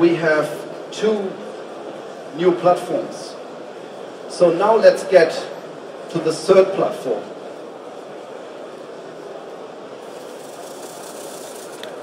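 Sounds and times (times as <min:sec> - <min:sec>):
roller poster rolling up: 0:10.0 - 0:12.0.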